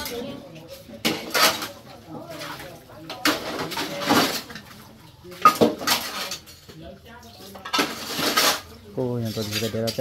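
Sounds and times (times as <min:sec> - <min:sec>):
plates and spoons clinking: 0:01.0 - 0:10.0.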